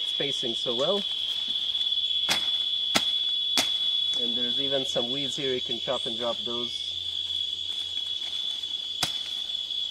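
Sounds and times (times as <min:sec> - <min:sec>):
insects buzzing: 0:00.0 - 0:09.9.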